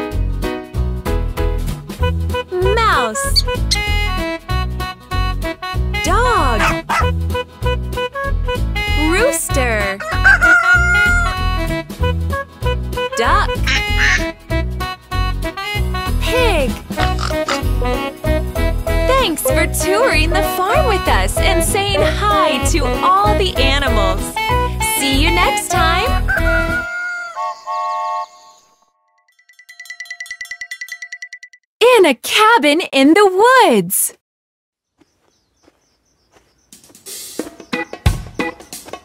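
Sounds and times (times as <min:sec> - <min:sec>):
children's music with steady beat: 0:01.6 - 0:10.0, 0:11.1 - 0:26.3, 0:36.7 - 0:39.0
rooster crowing: 0:10.0 - 0:11.4, 0:26.3 - 0:27.8
children's song: 0:19.1 - 0:26.2.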